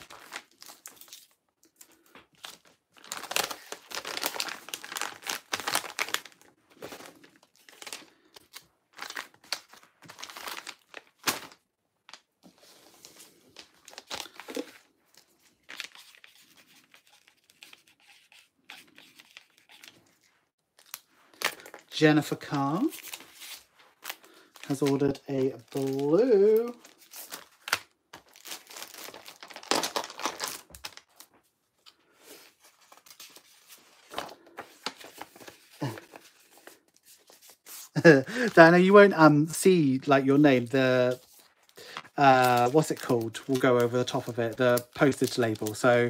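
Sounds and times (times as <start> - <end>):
paper mailer crinkling and tearing: 0.0 - 12.2, 13.0 - 20.2, 20.8 - 31.3, 32.3 - 39.1, 40.0 - 46.0.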